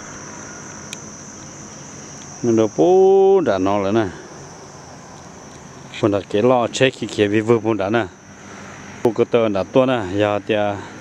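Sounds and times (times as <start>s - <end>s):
high-pitched insect chirring: 0.0s - 10.8s.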